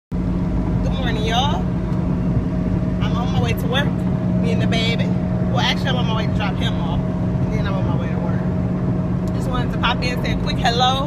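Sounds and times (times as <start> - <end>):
car engine and road noise: 0.1 - 11.0.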